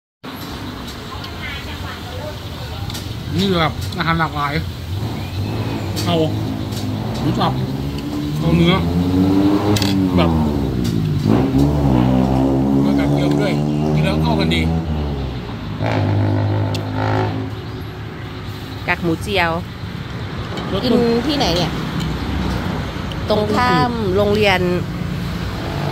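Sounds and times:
passing vehicles rumble: 0:00.2 - 0:25.9.

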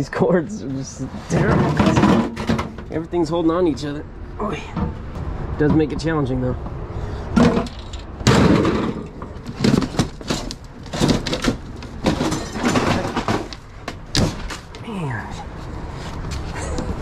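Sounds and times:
wooden panel knocking and scraping: 0:01.3 - 0:02.9
sheet metal clattering: 0:01.3 - 0:03.0, 0:07.4 - 0:14.7.

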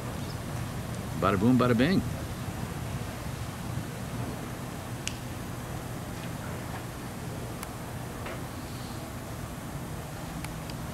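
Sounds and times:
low background hum and hiss: 0:00.0 - 0:10.9.

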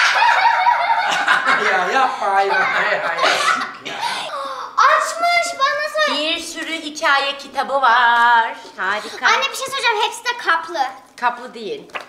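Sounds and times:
girl laughing: 0:00.0 - 0:04.7.

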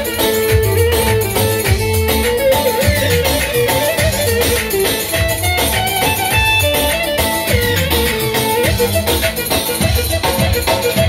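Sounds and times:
dance music with pulsing bass: 0:00.0 - 0:11.0.

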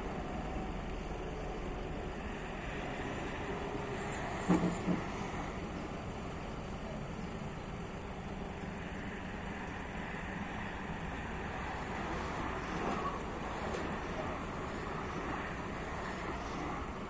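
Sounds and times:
crane engine running: 0:00.0 - 0:17.0.

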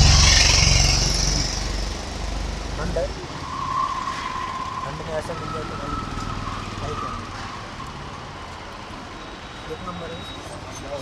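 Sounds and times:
engine running at low revs: 0:00.0 - 0:03.3.

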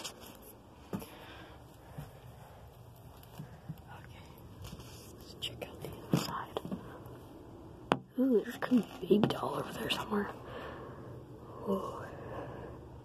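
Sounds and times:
quiet hiss: 0:00.0 - 0:13.0
faint whispering: 0:03.6 - 0:07.1, 0:11.5 - 0:12.4.

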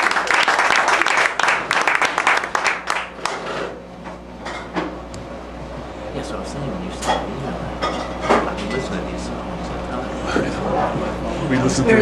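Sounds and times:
audience applause: 0:00.0 - 0:03.4
room noise: 0:00.0 - 0:12.0.

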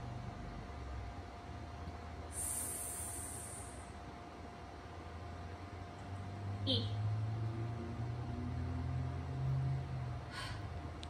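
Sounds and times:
electrical hum: 0:00.0 - 0:11.0
high hiss: 0:02.3 - 0:04.0.

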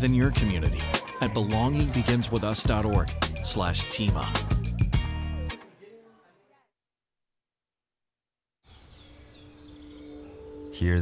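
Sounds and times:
person speaking: 0:00.0 - 0:04.6
birds chirping faintly: 0:08.6 - 0:11.0.

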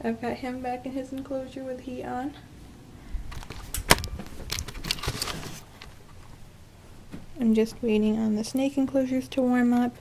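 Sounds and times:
camera handling clicks and rustles: 0:03.3 - 0:06.3.

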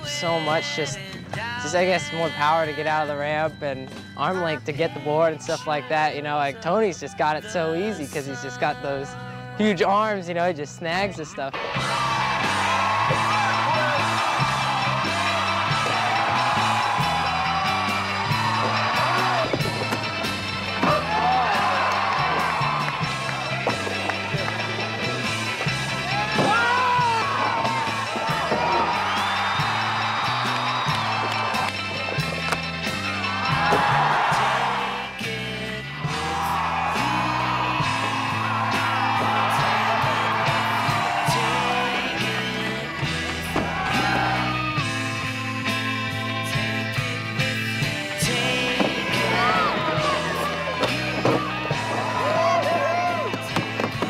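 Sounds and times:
background music with bass line: 0:00.0 - 0:54.0.

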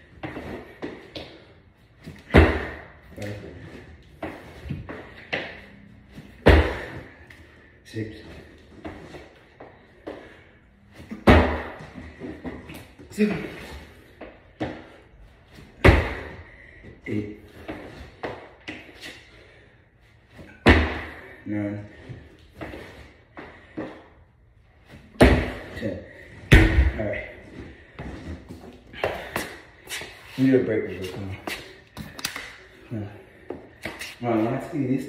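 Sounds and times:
heavy thuds of feet landing: 0:02.2 - 0:03.0, 0:04.2 - 0:07.2, 0:11.0 - 0:12.7, 0:20.5 - 0:21.3, 0:25.0 - 0:25.7.

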